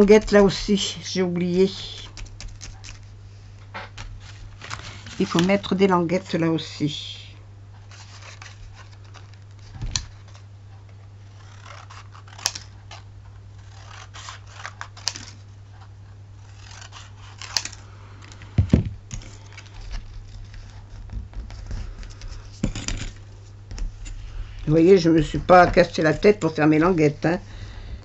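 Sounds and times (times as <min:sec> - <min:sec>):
paper rustling: 0:00.0 - 0:05.7, 0:07.8 - 0:10.5, 0:11.2 - 0:27.0
steady low hum: 0:00.0 - 0:28.0
scissors snipping cardstock: 0:11.3 - 0:13.0, 0:16.4 - 0:17.8.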